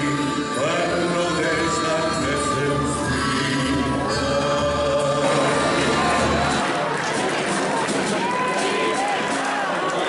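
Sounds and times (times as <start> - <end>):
group of voices singing in unison: 0.0 - 6.7.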